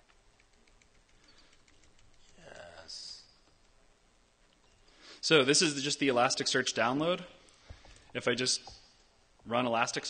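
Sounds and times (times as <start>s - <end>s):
laptop keyboard keys clicking: 0.0s - 2.4s.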